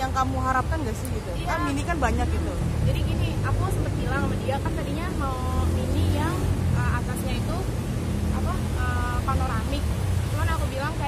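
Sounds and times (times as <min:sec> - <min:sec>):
woman talking: 0:00.0 - 0:07.7, 0:08.3 - 0:11.0.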